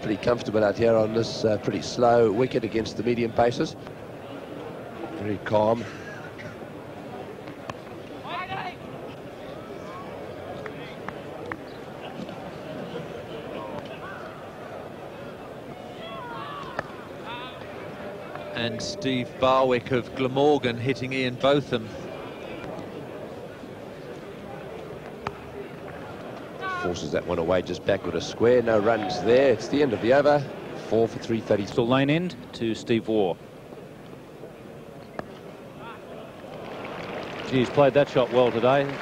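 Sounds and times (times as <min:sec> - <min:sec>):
crowd murmur: 0:00.0 - 0:31.7, 0:33.6 - 0:39.0
background noise from ground: 0:00.0 - 0:39.0.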